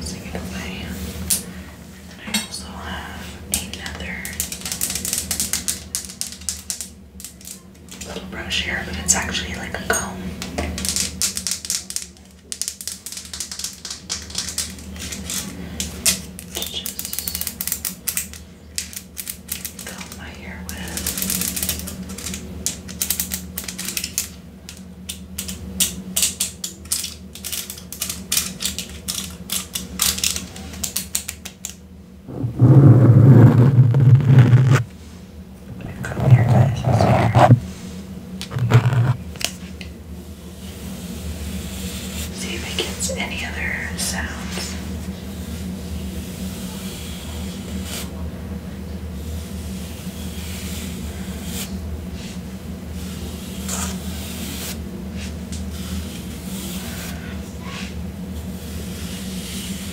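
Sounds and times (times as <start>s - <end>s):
loud low rubbing noise: 32.3s - 34.9s, 35.7s - 37.8s, 38.5s - 39.2s.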